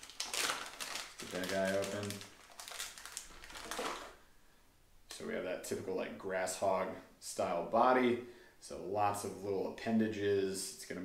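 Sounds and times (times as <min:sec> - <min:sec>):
plastic bag crinkling: 0:00.0 - 0:04.2.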